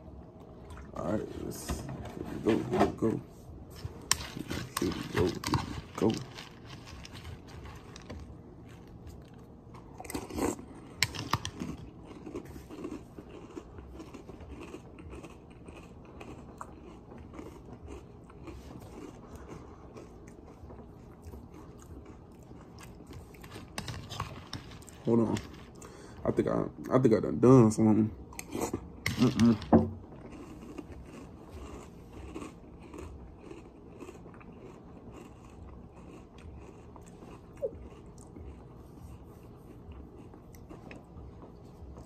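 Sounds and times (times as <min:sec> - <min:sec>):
person chewing crunchy cereal: 0:03.7 - 0:27.1, 0:28.2 - 0:42.0.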